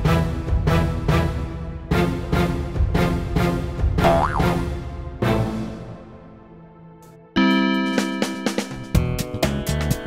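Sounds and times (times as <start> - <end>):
cartoon music: 4.0 - 4.6
comic boing effect: 4.0 - 4.6.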